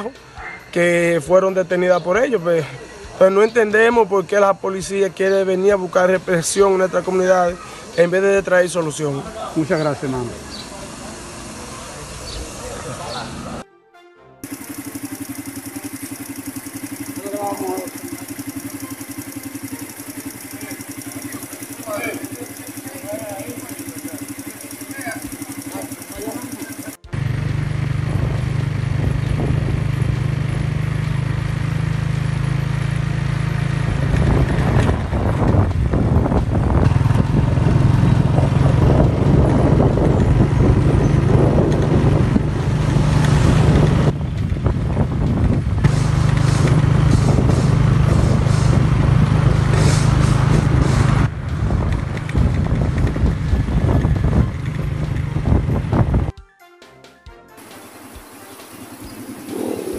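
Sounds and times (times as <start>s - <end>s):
road noise: 8.7s - 13.6s, 26.2s - 56.1s, 57.6s - 59.9s
vehicle engine running: 14.4s - 56.3s, 57.6s - 59.9s
wind buffeting microphone: 34.0s - 56.3s, 59.1s - 59.9s.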